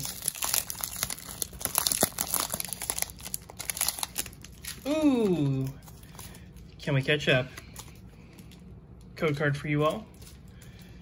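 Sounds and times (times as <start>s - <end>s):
foil wrapper crinkling: 0.0s - 7.0s.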